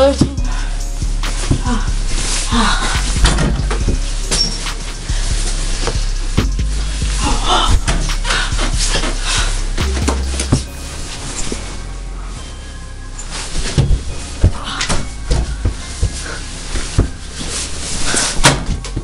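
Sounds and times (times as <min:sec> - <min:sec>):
music playing: 0:00.0 - 0:19.0.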